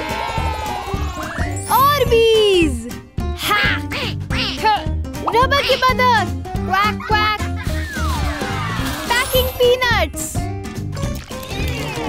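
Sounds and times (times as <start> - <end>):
upbeat children's music: 0.0 - 12.0
cartoon duck quacks: 3.6 - 4.8.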